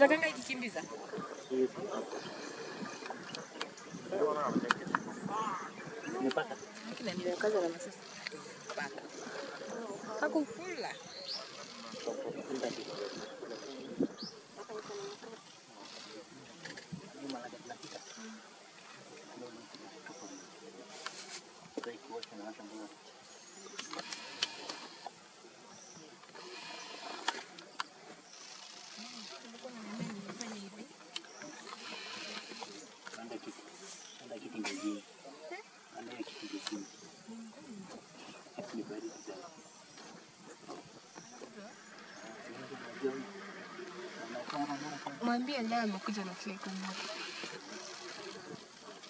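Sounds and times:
people talking indistinctly: 0.0s - 49.0s
leopards soft low calls: 36.0s - 38.4s.

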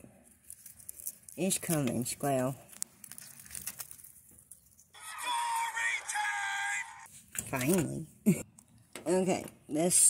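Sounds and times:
squirrel cracking peanut shell: 2.7s - 4.9s.

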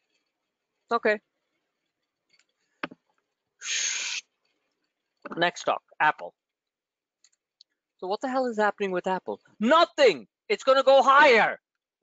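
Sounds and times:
breathy hiss into microphone: 3.6s - 4.2s.

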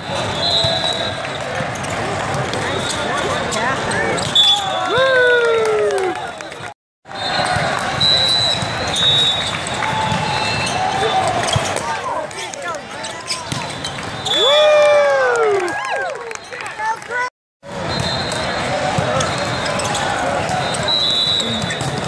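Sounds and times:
spectator chatter: 0.0s - 5.2s, 7.4s - 14.4s, 15.7s - 22.0s
shoes squeaking on court: 2.6s - 4.7s, 8.2s - 12.0s, 12.6s - 14.4s, 18.0s - 22.0s
players shouting: 9.8s - 13.4s.

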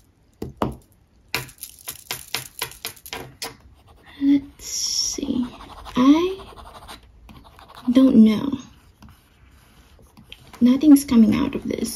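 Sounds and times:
pen nib scratching on paper: 5.2s - 10.6s.

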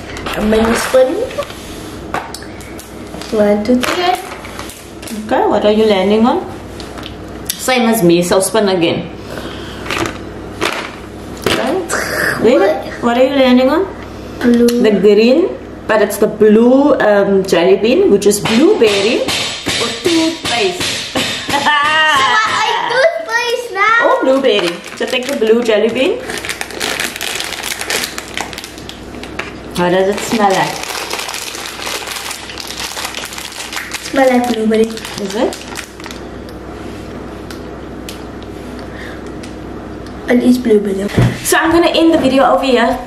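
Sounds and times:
plastic bag crinkling: 24.3s - 36.2s.

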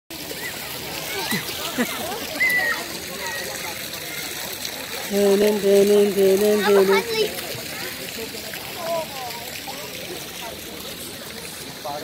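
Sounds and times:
pool water splashing: 0.1s - 12.0s.

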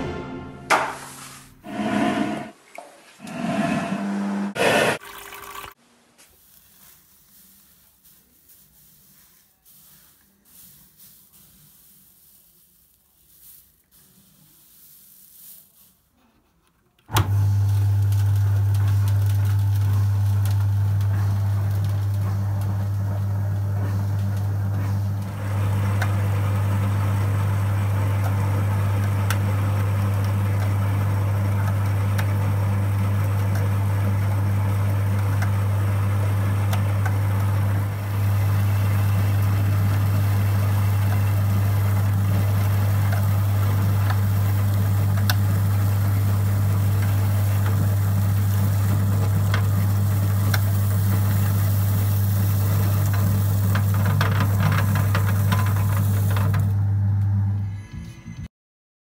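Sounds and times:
low motor hum: 3.2s - 5.0s, 17.1s - 57.8s
grain crackling through rollers: 4.6s - 16.4s, 17.3s - 56.8s.

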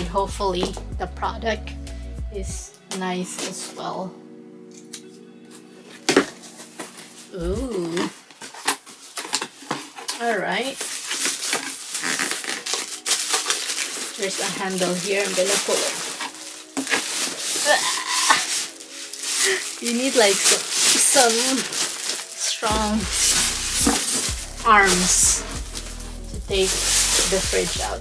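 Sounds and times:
soft background music: 0.0s - 28.0s
cardboard and styrofoam scraping: 5.9s - 28.0s.

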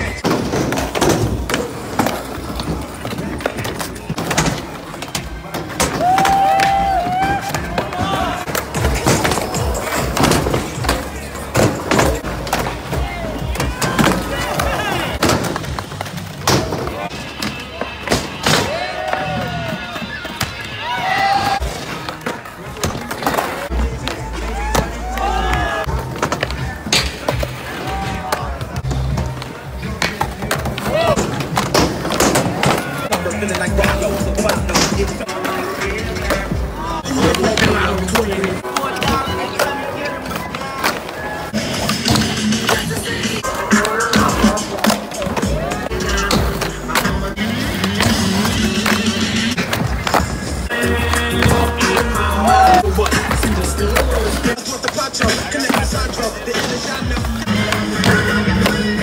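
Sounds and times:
skateboard wheels rolling: 0.0s - 59.0s
skateboards clacking: 0.0s - 59.0s
song with vocals: 33.1s - 39.4s, 41.8s - 49.6s, 50.4s - 59.0s.

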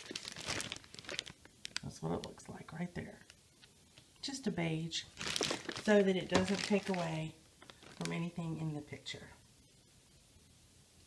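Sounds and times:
plastic bag crinkling: 0.0s - 3.3s, 5.0s - 8.6s.

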